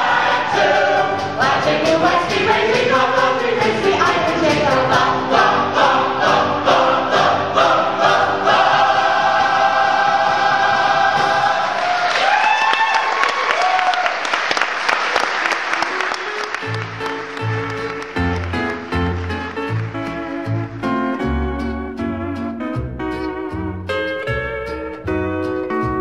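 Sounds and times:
chorus and band singing: 0.0 - 12.2
audience applause: 10.4 - 21.2.

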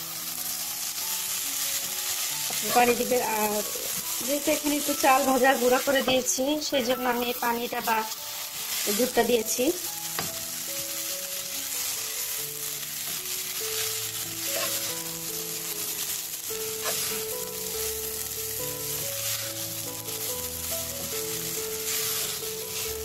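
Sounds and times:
coconut sizzling in a pan: 0.0 - 23.0
soft background music: 0.0 - 23.0
spatula scraping a pan: 2.0 - 6.4, 11.7 - 17.9, 18.6 - 23.0.

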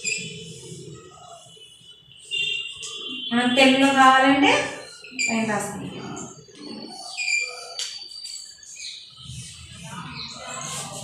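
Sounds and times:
small birds chirping: 6.2 - 11.0.

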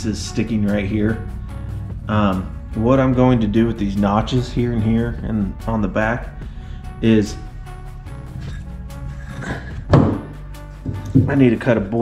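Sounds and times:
background music: 0.0 - 12.0
wooden board thunk on deck: 9.9 - 10.3.

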